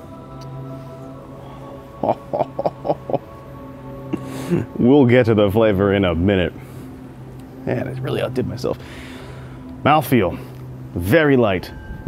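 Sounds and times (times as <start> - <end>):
soft background music: 0.0 - 12.0
man laughing: 1.9 - 3.4, 4.1 - 4.8.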